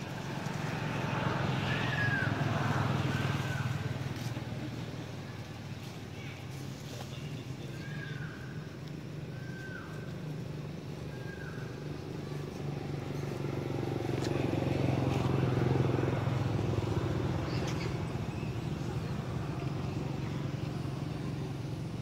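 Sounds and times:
vehicle engine passing by: 0:00.0 - 0:08.3, 0:09.3 - 0:22.0.

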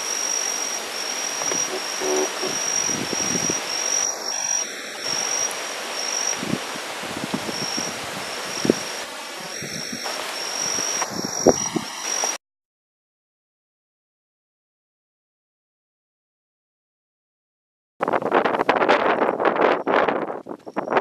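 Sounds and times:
wind gusting over microphone: 0:00.0 - 0:12.1, 0:18.0 - 0:21.0
high steady insect call: 0:00.0 - 0:12.4, 0:19.5 - 0:21.0.

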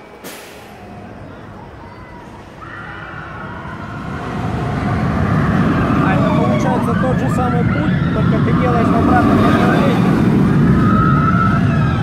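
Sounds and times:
ride low rumble: 0:00.0 - 0:12.0
hiss of air: 0:00.2 - 0:00.8
riders shrieking: 0:01.8 - 0:12.0.

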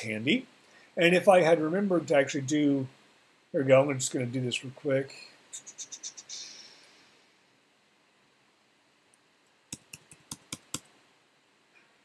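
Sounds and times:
computer keyboard keystrokes: 0:09.7 - 0:10.9.

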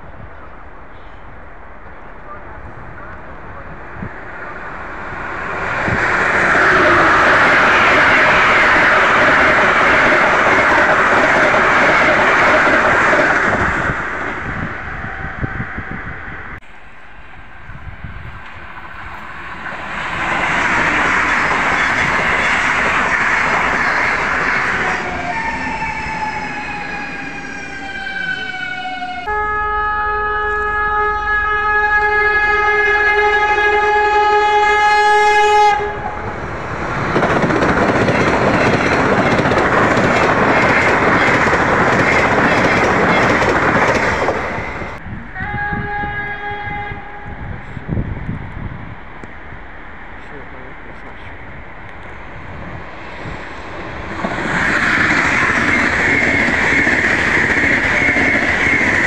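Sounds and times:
train passing at speed: 0:00.0 - 0:59.0
multi-tone train horn: 0:06.5 - 0:09.4, 0:27.9 - 0:36.2, 0:45.3 - 0:47.8.

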